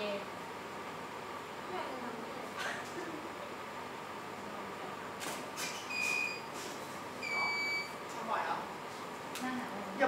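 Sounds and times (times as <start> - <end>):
electronic beeps: 7.2 - 7.9.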